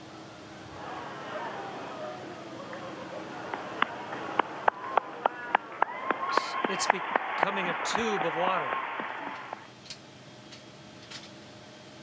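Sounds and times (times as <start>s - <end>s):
cabin ventilation hum: 0.0s - 12.0s.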